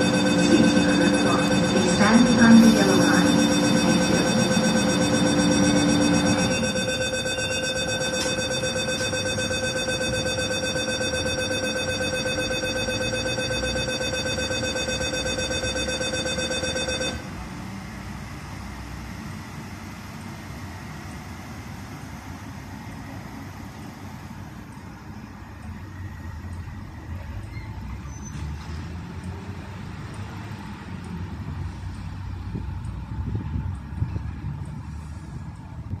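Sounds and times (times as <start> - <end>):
electronic warning tone: 0.0 - 17.3
electric train rumble: 0.0 - 36.0.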